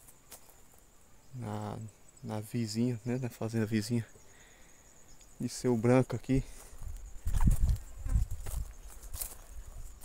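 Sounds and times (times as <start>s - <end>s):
footsteps through brush: 0.0s - 0.9s, 6.4s - 10.0s
leaves and twigs crackling: 6.5s - 10.0s.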